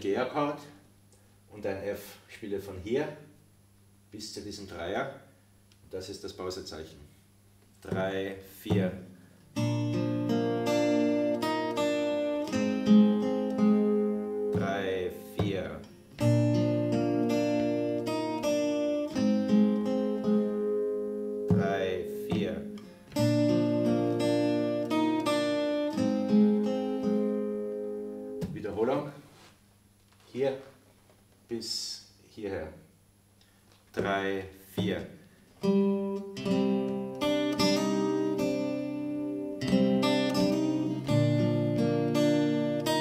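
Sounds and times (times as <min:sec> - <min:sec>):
fingerstyle acoustic guitar: 0:07.8 - 0:28.7, 0:35.6 - 0:43.0.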